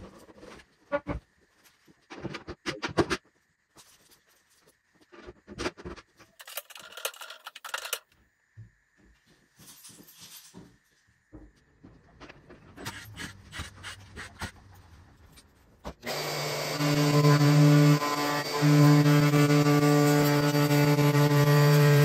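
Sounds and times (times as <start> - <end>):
plunge router cutting wood: 16.0 - 22.0.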